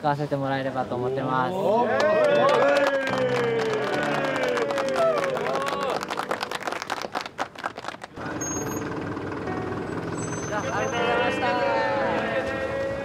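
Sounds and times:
crowd clapping: 0:01.9 - 0:08.2
truck engine idling: 0:08.2 - 0:12.6.

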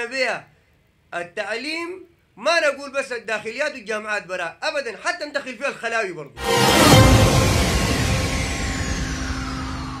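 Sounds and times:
noisy swell with falling tone: 0:06.4 - 0:10.0.

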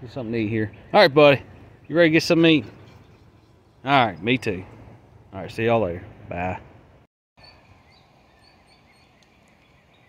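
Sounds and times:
small bird chirps: 0:07.4 - 0:10.0.

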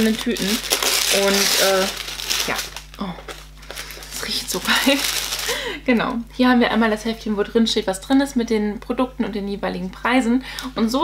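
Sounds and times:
tissue paper and cardboard rustling: 0:00.0 - 0:05.6.

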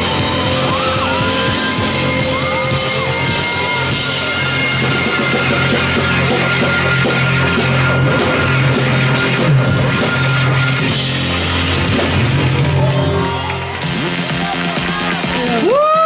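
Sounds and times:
live rock band playing: 0:00.0 - 0:16.0.

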